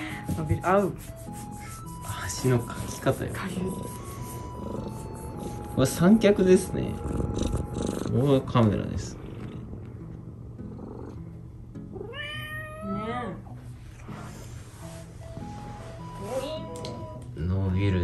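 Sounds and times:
soft background music: 0.0s - 18.0s
cat meowing: 12.0s - 13.4s.

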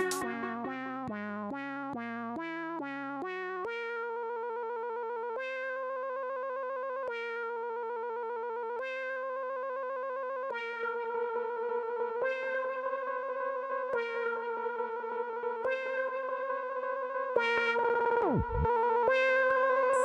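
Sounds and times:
glitchy electronic synth music: 0.0s - 1.8s, 17.4s - 20.0s.

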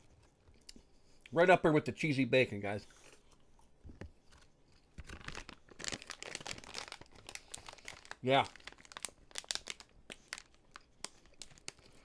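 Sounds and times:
popcorn crackling and crinkling: 4.1s - 12.0s.

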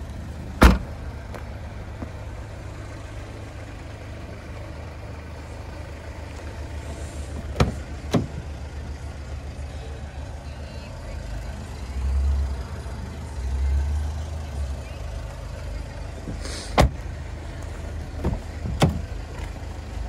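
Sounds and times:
car door latch clicks: 0.6s - 0.9s, 7.5s - 8.4s, 16.3s - 17.0s, 18.2s - 19.0s.

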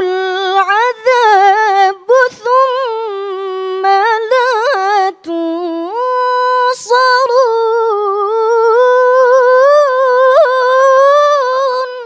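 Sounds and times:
woman reciting melodically: 0.0s - 12.0s.

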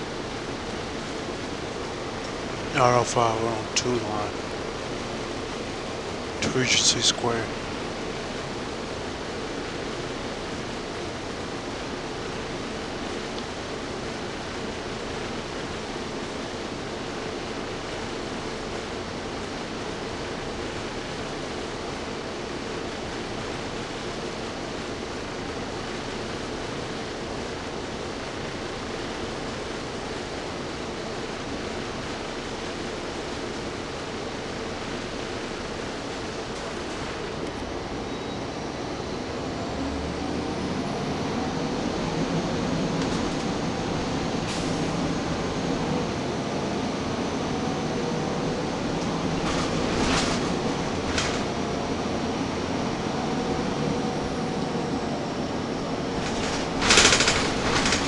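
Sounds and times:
bus engine hum: 0.0s - 58.0s
cooling fans: 0.0s - 58.0s
sharp rattles: 49.4s - 51.6s, 56.1s - 58.0s.

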